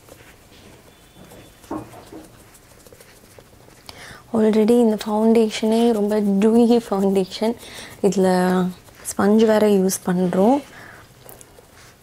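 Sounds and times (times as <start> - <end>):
makeup sponge tapping skin: 0.8 - 10.0.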